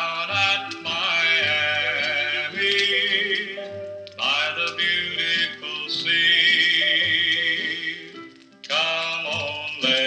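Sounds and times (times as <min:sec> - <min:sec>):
country music record playing: 0:00.0 - 0:10.0.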